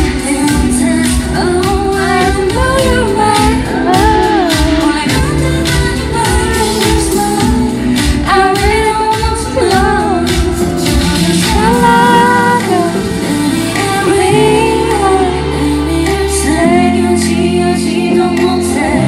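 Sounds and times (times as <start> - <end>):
pop backing track with beat: 0.0 - 19.0
woman singing into microphone: 0.0 - 19.0.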